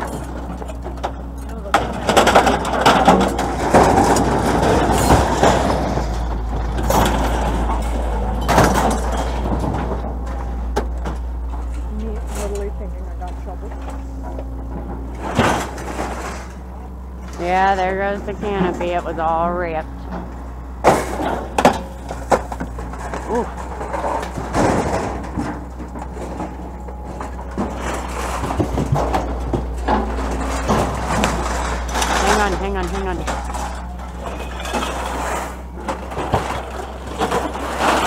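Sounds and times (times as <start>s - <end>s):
scrap metal clattering: 0.0s - 38.0s
steady low hum: 0.0s - 38.0s.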